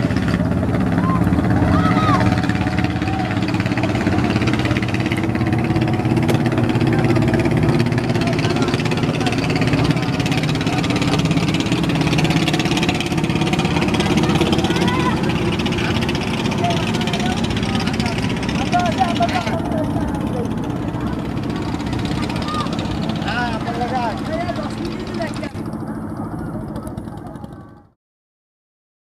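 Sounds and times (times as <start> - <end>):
boat engine running: 0.0 - 28.0.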